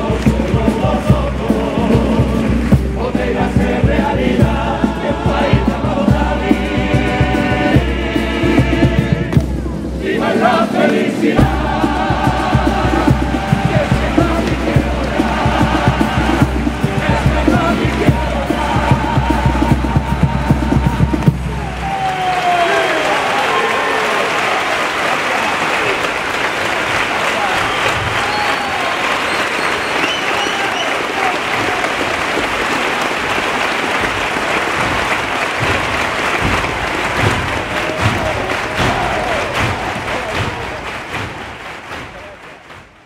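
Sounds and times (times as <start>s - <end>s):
audience applause and cheering: 0.0s - 6.0s, 9.4s - 43.0s
chorus singing with drums: 0.0s - 21.9s, 34.2s - 43.0s
people shouting: 21.5s - 24.8s, 35.0s - 41.4s.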